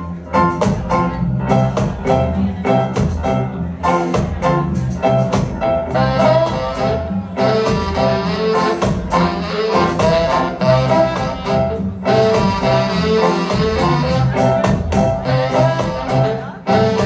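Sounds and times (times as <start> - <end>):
ska band playing: 0.0 - 17.0
saxophones playing tune: 5.8 - 17.0.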